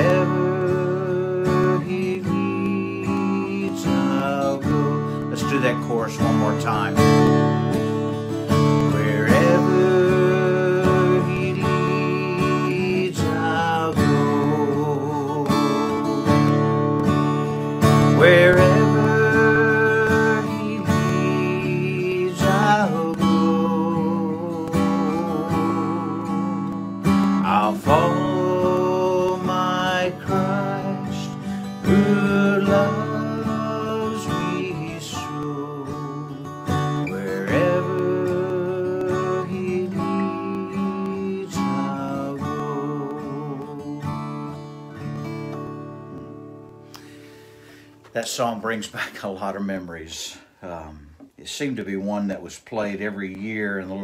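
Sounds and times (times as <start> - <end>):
man singing a hymn: 0.0 - 7.3, 8.6 - 16.5, 18.0 - 44.4
strummed acoustic guitar: 0.0 - 54.0.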